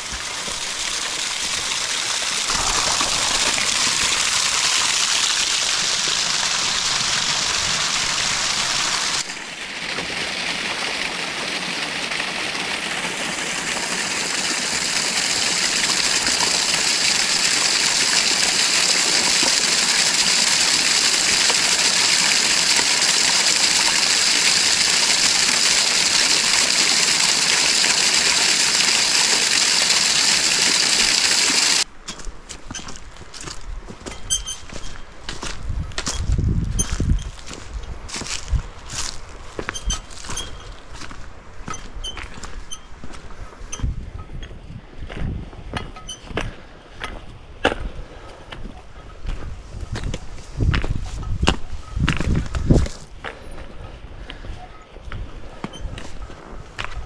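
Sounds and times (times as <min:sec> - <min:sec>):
spring water splashing over rock: 0:00.0 - 0:31.9
footsteps on dry leaves: 0:02.5 - 0:04.5, 0:31.9 - 0:34.1, 0:34.7 - 0:41.7.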